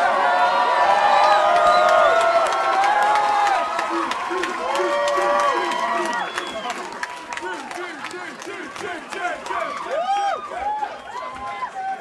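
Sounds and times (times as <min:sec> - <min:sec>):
audience shouting and whooping: 0:00.0 - 0:08.1, 0:08.7 - 0:12.0.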